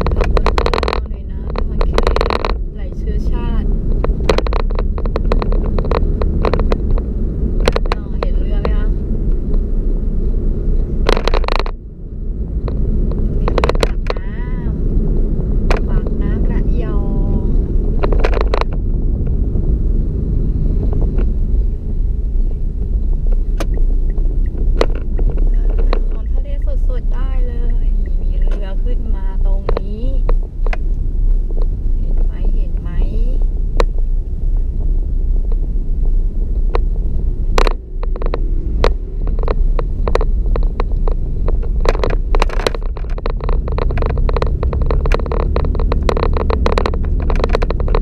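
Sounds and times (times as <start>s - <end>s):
small clicks and knocks: 0.0s - 2.6s, 4.0s - 9.7s, 11.0s - 11.8s, 12.6s - 14.2s, 18.0s - 19.4s, 22.8s - 26.2s, 37.5s - 48.0s
voices: 0.0s - 3.7s, 7.8s - 9.0s, 13.8s - 14.8s, 15.7s - 17.6s, 25.5s - 30.3s, 32.0s - 33.4s
engine and tyre rumble: 0.0s - 48.0s.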